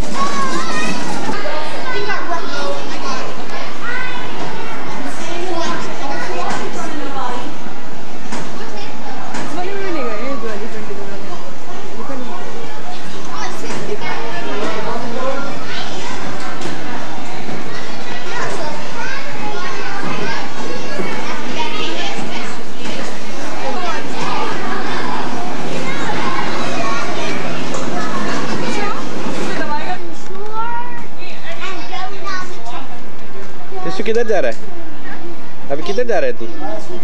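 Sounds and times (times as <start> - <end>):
children shouting and chattering: 0.0 - 37.0.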